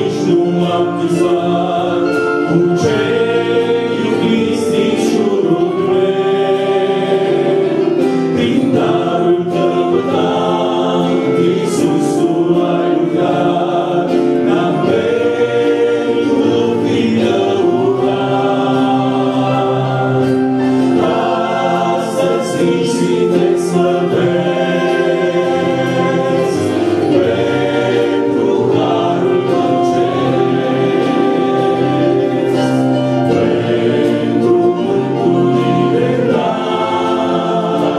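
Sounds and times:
choir singing a hymn: 0.0s - 37.9s.

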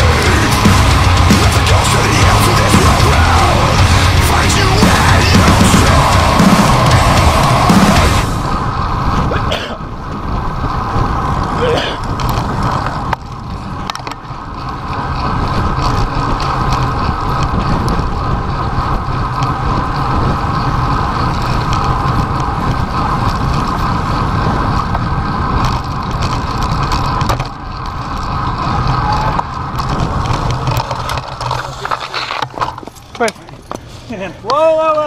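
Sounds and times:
road noise from bicycle: 0.0s - 35.0s
wind noise: 0.0s - 35.0s.

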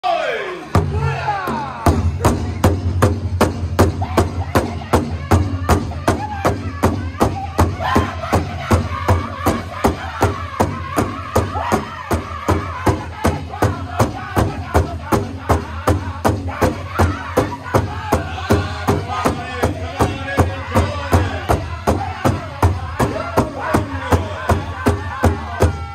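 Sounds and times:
high unison singing voices: 0.0s - 2.7s, 3.8s - 25.9s
big drum steady beat: 0.8s - 25.9s.

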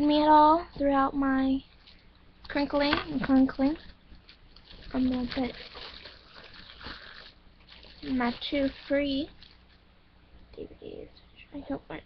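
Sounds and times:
plastic wrap crinkling: 1.7s - 9.9s.

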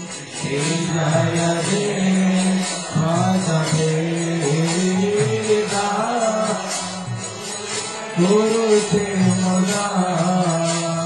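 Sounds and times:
jingling hand percussion: 0.0s - 11.0s
voices chanting in song: 0.0s - 11.0s.

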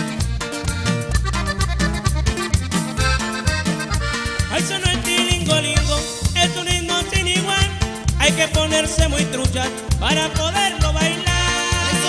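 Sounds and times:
button accordion melody: 0.0s - 12.0s
drum kit beat: 0.0s - 12.0s
electric bass: 0.0s - 12.0s
twelve-string guitar: 0.0s - 12.0s.

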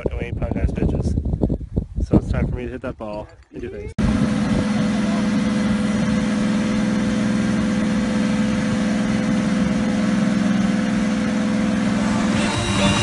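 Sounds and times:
car engine idling: 4.1s - 13.0s.

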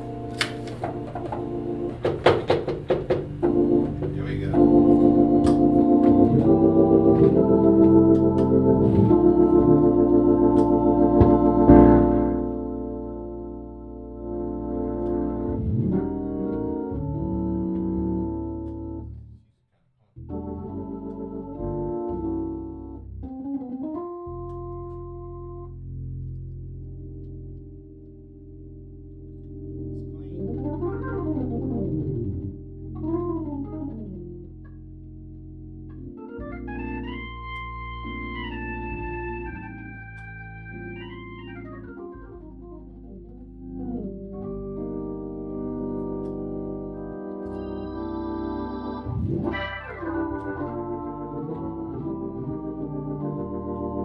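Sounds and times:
organ chords and glissandos: 0.0s - 19.4s, 20.2s - 54.0s.

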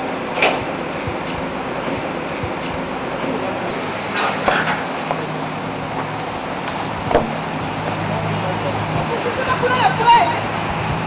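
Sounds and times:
car engine hum: 0.0s - 11.0s
street traffic: 0.0s - 11.0s.

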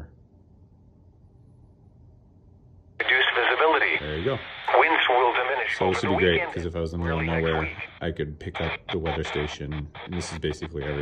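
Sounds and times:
weather broadcast voice on radio: 3.0s - 11.0s.

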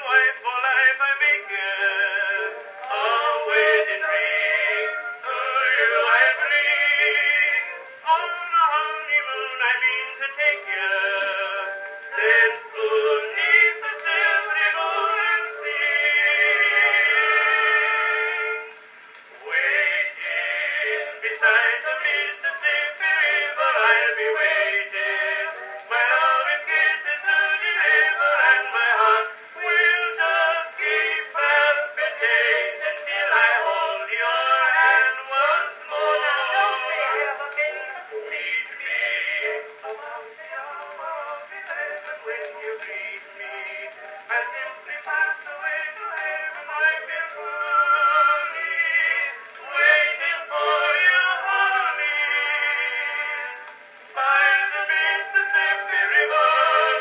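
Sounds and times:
thin early recording of singing: 0.0s - 57.0s.

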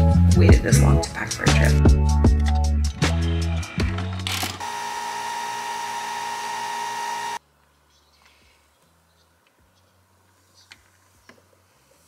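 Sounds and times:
background music with steady beat: 0.0s - 4.1s
coffee machine whining and hissing: 4.6s - 7.4s.

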